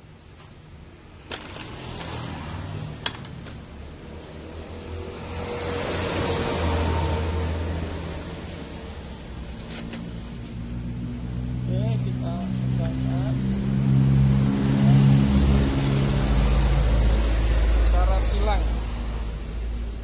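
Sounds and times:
metal tools clicking: 1.3s - 2.2s
vehicle passing by: 1.5s - 3.0s, 3.9s - 20.0s.

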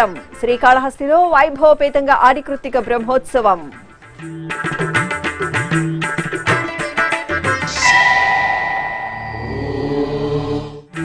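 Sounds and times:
low sustained drone: 7.7s - 10.8s
chant-like vocal tone: 7.8s - 10.9s.

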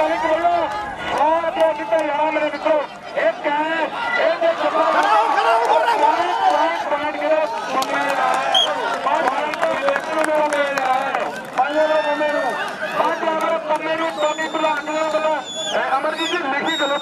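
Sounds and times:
man commentating: 0.0s - 17.0s.

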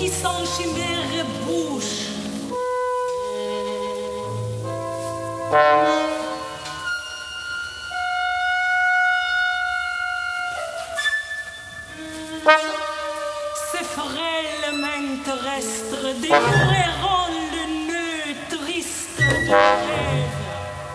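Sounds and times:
chamber ensemble playing chords: 0.0s - 10.1s, 12.4s - 18.5s, 19.2s - 20.9s.

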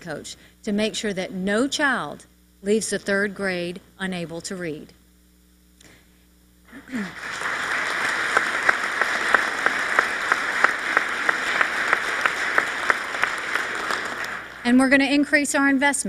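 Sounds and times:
audience applauding: 6.8s - 14.7s
single sharp claps: 7.2s - 14.6s.

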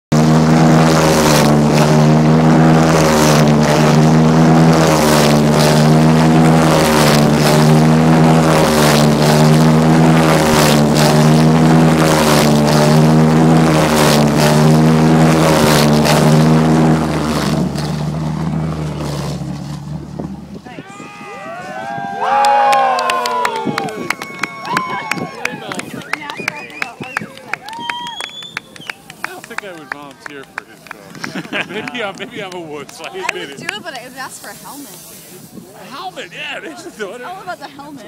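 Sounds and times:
loud engine running steadily: 0.1s - 38.0s.

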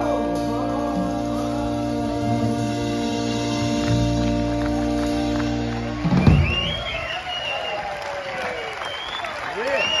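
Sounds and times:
live band closing chord: 0.0s - 6.9s
audience applauding and cheering: 1.2s - 10.0s.

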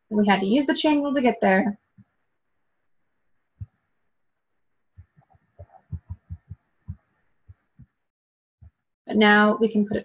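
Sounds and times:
stylus knocking on tablet screen: 5.0s - 7.0s.

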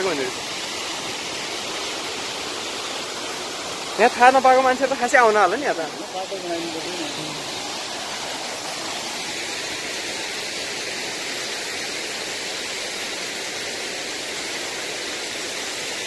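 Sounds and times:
waterfall rushing: 0.0s - 16.0s.

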